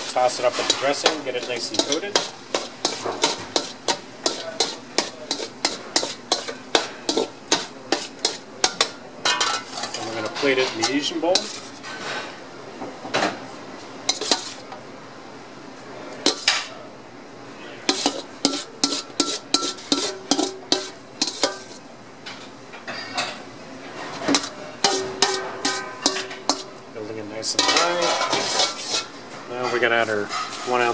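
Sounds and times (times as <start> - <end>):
metal bowl clinking against ceramic: 0.4 - 11.6, 17.9 - 21.8, 24.1 - 26.7, 27.5 - 30.9.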